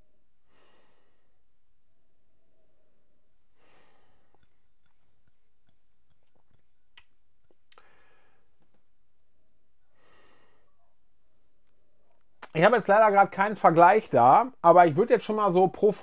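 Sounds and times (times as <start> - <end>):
man breathing through nose: 0.5 - 1.4, 3.5 - 4.6, 7.8 - 8.6, 9.9 - 10.8.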